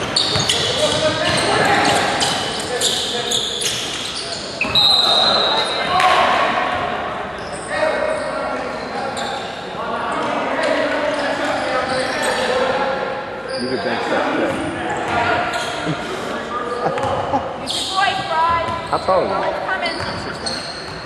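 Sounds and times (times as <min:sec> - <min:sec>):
sneaker squeaks: 0:00.0 - 0:12.6, 0:13.4 - 0:16.0, 0:16.7 - 0:21.0
voices echoing in a hall: 0:00.0 - 0:21.0.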